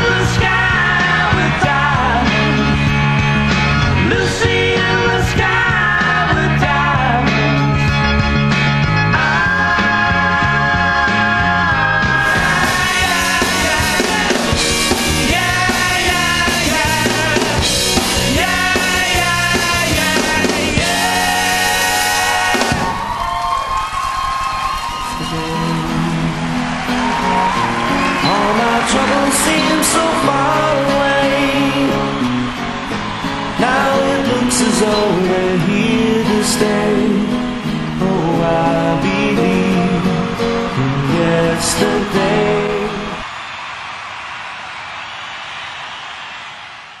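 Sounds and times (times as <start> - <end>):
audience cheering and applauding: 0.0 - 47.0
acoustic guitar: 25.2 - 43.2.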